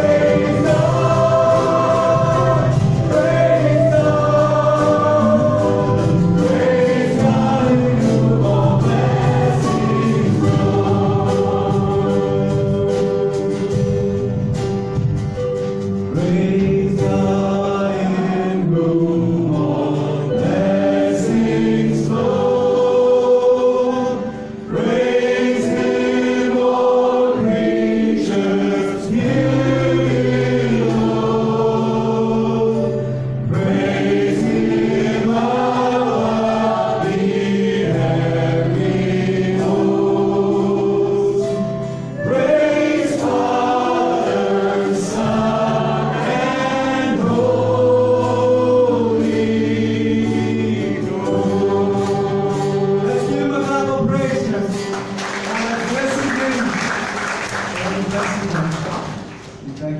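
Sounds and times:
drum kit: 0.0 - 56.2
people singing together: 0.0 - 59.7
acoustic guitar: 0.0 - 59.9.

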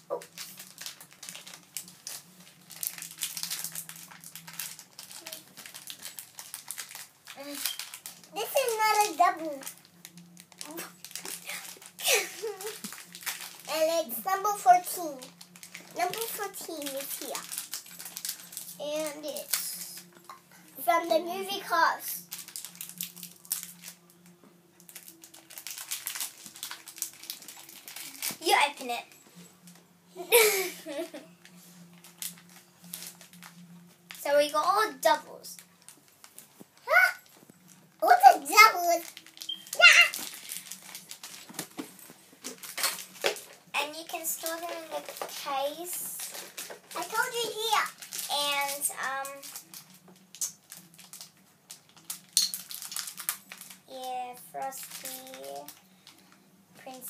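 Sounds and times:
faint steady hum: 0.0 - 57.0
plastic wrapper crackling: 0.0 - 57.0
small objects clicking and rustling: 0.1 - 20.4, 22.2 - 29.8, 30.9 - 34.3, 35.5 - 53.9, 54.6 - 57.0.

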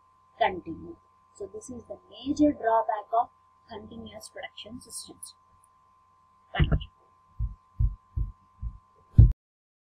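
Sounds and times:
microphone handling thuds: 6.6 - 9.3.

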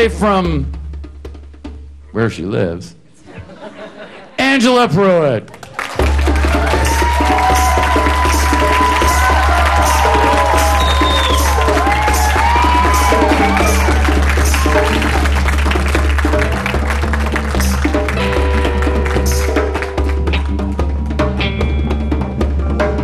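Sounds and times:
live band playing: 0.0 - 2.7, 4.6 - 23.0
hand drums: 5.9 - 23.0.

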